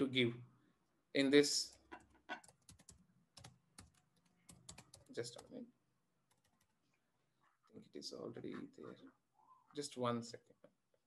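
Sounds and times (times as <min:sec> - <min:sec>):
typing on computer keyboard: 0:02.0 - 0:05.5, 0:06.3 - 0:06.7.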